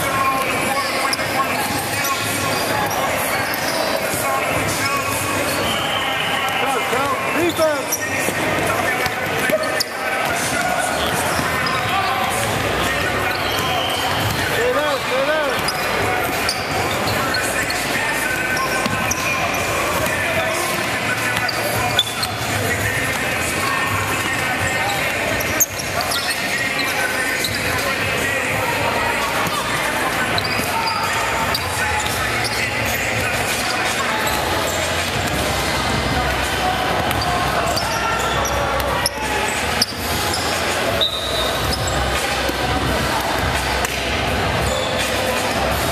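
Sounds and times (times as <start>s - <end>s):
players' voices echoing: 0.0s - 45.9s
shoe squeaks: 0.0s - 45.9s.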